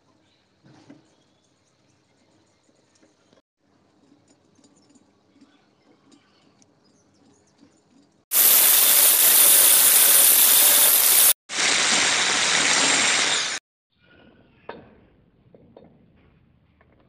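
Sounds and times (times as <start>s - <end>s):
angle grinder grinding steel: 8.3s - 13.6s.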